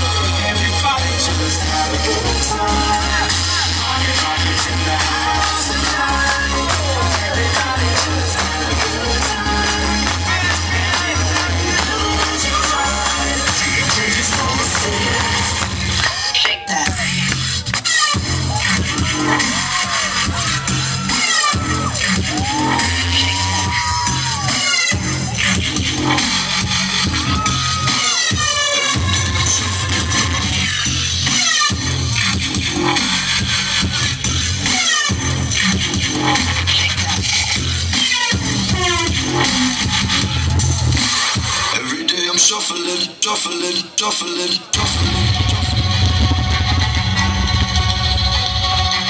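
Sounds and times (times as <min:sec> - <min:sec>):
bass-heavy electronic beat: 0:00.0 - 0:49.0.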